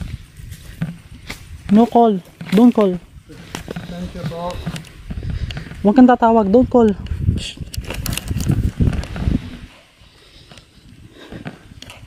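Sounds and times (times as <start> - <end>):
footsteps on sand: 0.0 - 6.8
low thuds and rustles: 0.0 - 9.8.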